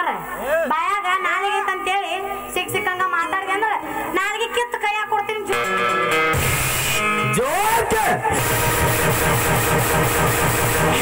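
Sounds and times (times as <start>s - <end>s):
live band music: 5.5s - 11.0s.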